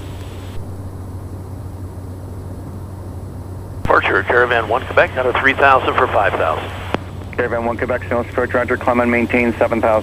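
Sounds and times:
turboprop engine drone: 0:00.0 - 0:10.0
radio click: 0:05.4 - 0:07.0.

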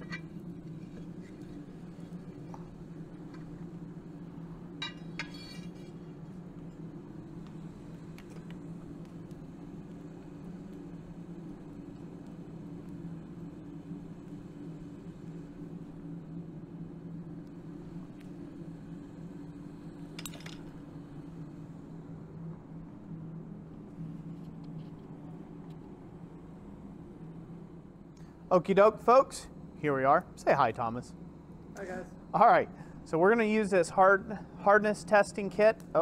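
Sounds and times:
forge blower humming: 0:00.0 - 0:36.0.

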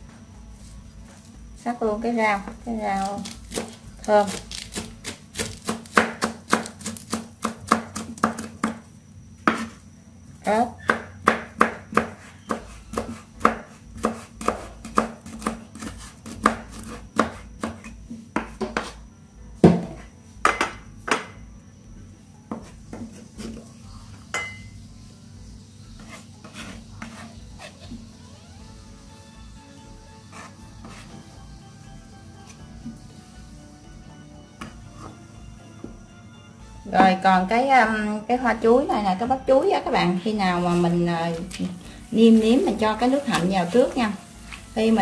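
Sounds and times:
faint background music: 0:00.0 - 0:45.0
knife chopping on wooden board: 0:03.2 - 0:08.8, 0:09.4 - 0:09.8, 0:10.8 - 0:19.0.

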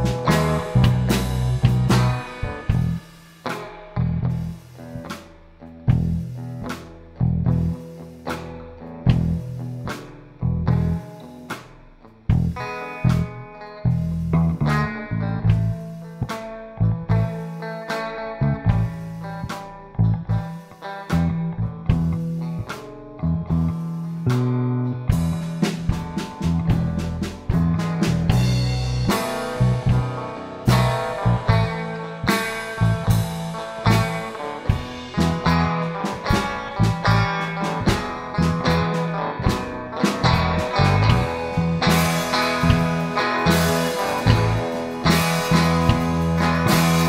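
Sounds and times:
electric rhythm guitar: 0:00.0 - 0:47.0
fretless electric bass: 0:00.0 - 0:47.0
programmed drums slow beat: 0:00.0 - 0:47.0.

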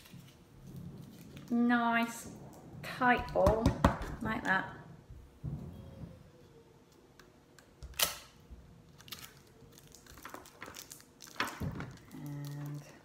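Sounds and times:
kitchen foil rustling: 0:00.0 - 0:02.2, 0:08.9 - 0:13.0.

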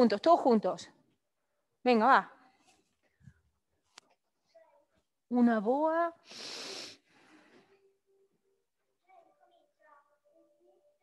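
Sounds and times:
person hissing: 0:06.2 - 0:07.1.

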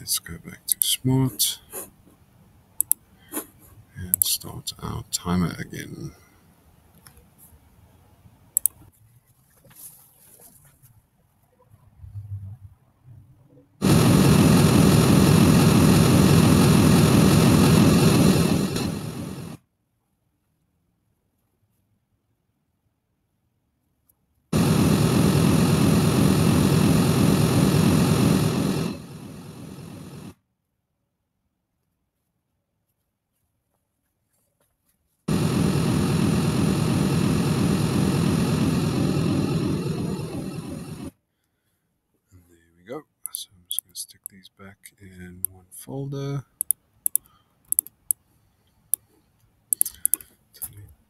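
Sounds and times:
pink noise hiss from loudspeaker: 0:00.0 - 0:01.8
pink noise hiss: 0:13.8 - 0:19.6, 0:24.6 - 0:30.3, 0:35.3 - 0:41.1.

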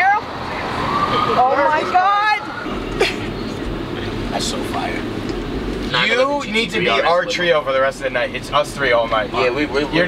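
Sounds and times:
city street noise: 0:00.0 - 0:10.0
distant emergency siren: 0:00.4 - 0:02.9.

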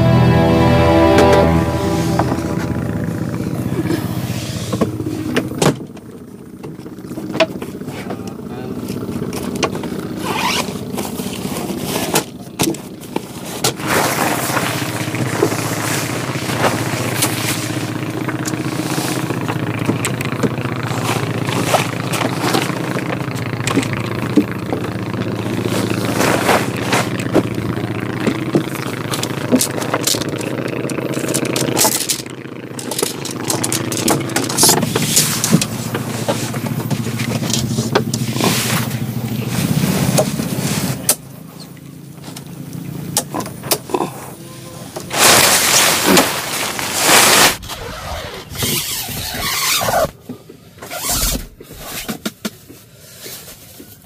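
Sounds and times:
small engine running: 0:00.0 - 0:50.3
tent groundsheet rustling: 0:10.1 - 0:19.4, 0:25.6 - 0:27.2, 0:32.8 - 0:41.1, 0:45.1 - 0:50.2, 0:50.8 - 0:54.0
tent poles clattering: 0:28.6 - 0:38.9, 0:45.0 - 0:50.1.

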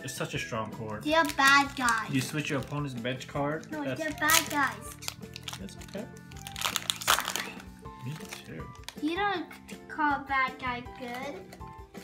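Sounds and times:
background music: 0:00.0 - 0:12.0
foil wrapper crinkling: 0:01.1 - 0:09.0.

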